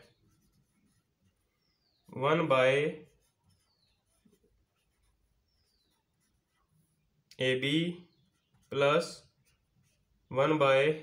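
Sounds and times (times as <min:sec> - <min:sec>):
marker pen writing on whiteboard: 0:00.0 - 0:11.0.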